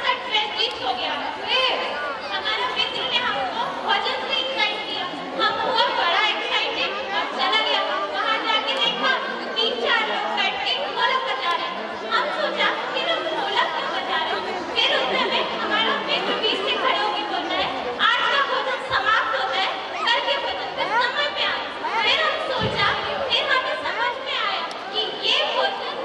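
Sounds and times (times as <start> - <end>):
background chatter: 0.0 - 26.0
women talking into microphones: 0.0 - 26.0.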